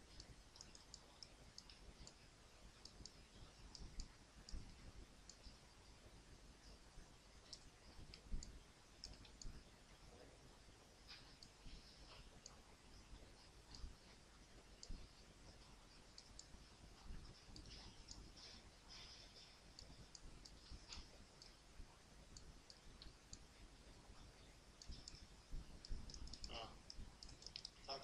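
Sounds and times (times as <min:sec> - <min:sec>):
computer mouse clicks: 0:00.0 - 0:02.2, 0:02.8 - 0:05.6, 0:07.4 - 0:09.6, 0:14.8 - 0:15.0, 0:16.1 - 0:21.6, 0:24.8 - 0:28.0
low hiss: 0:00.0 - 0:28.0.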